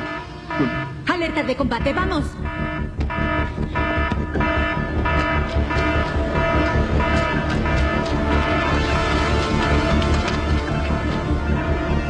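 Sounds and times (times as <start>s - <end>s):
alarm-like buzzing tone: 0.0s - 9.2s
dramatic electronic music: 0.0s - 12.0s.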